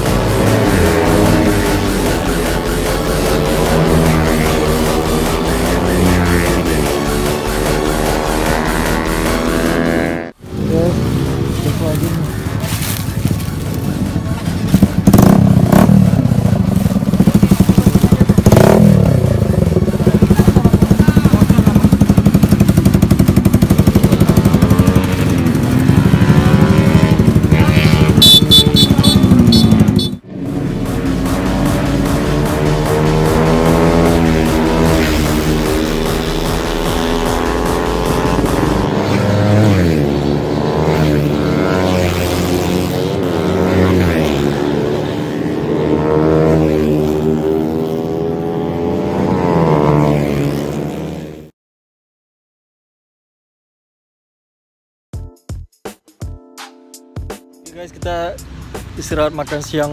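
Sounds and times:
motorcycle engines revving: 0:00.0 - 0:51.5
motorcycles accelerating past: 0:00.0 - 0:51.5.

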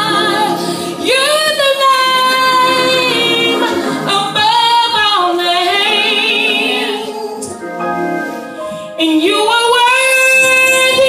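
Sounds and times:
woman singing gospel song: 0:00.0 - 0:07.5, 0:08.7 - 0:11.0.

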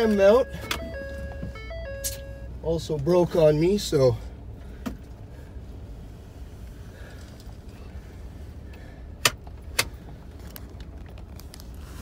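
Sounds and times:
truck engine rumble: 0:00.0 - 0:12.0.

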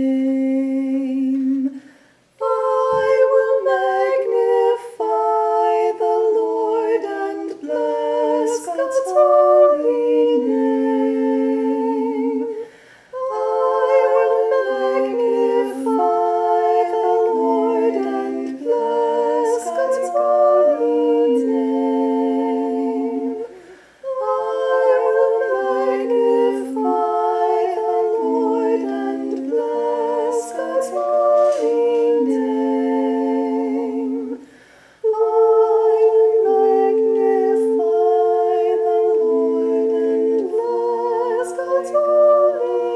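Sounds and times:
woman singing layered harmonies: 0:00.0 - 0:42.9
person chanting: 0:02.4 - 0:34.4.

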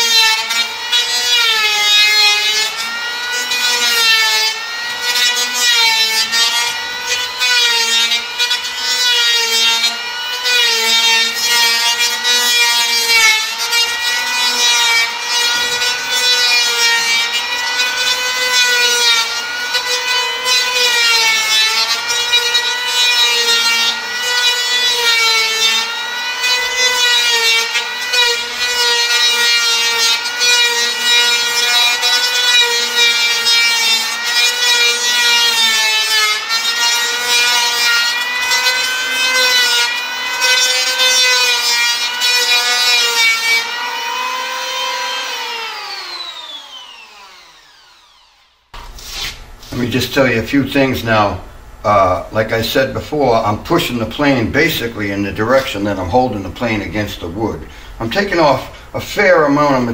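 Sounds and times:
electric power plane shaving wood: 0:00.0 - 0:59.9.

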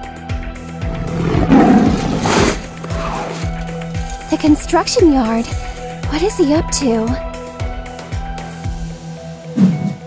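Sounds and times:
rough catlike roar: 0:00.8 - 0:03.4
background music with steady beat: 0:02.0 - 0:10.0.

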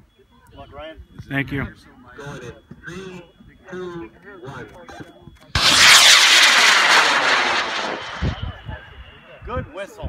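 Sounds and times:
rocket motor roaring: 0:05.6 - 0:09.3.

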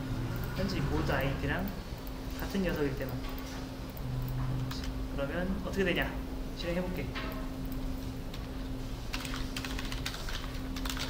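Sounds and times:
computer keyboard typing: 0:03.9 - 0:05.0, 0:09.1 - 0:11.0.

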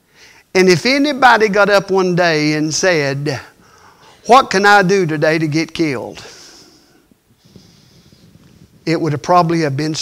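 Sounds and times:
man speaking: 0:00.5 - 0:03.6, 0:04.2 - 0:06.6, 0:08.8 - 0:10.0
man drawing breath: 0:03.6 - 0:04.2, 0:06.2 - 0:08.8.

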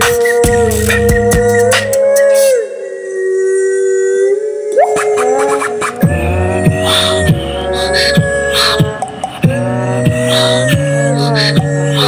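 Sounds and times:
vocal percussion: 0:00.0 - 0:12.0
voices singing a held chord: 0:00.0 - 0:12.0
voice sliding up: 0:04.6 - 0:12.0.

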